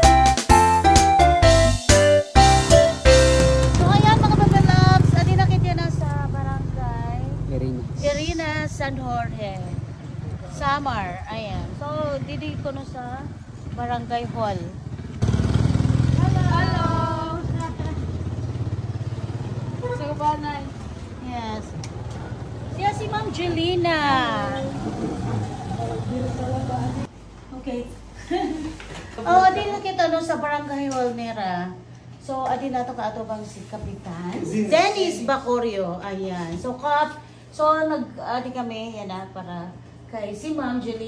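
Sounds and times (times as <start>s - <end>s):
vehicle engine idling: 3.8s - 20.7s
quiet voices: 24.2s - 27.1s.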